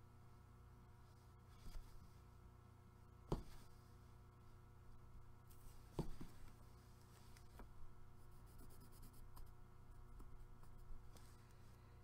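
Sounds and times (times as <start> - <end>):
steady low hum: 0.0 - 12.0
faint pencil scratching on paper: 8.1 - 9.6.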